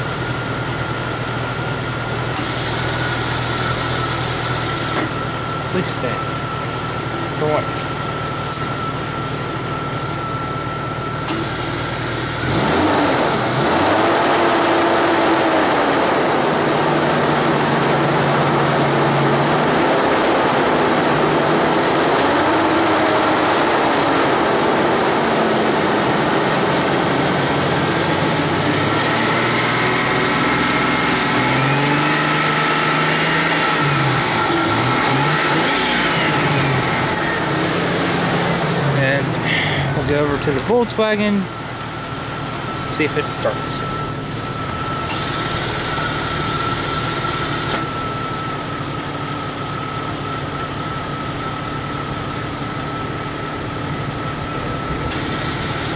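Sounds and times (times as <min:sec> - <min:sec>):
car engine idling and revving: 0:00.0 - 0:55.9.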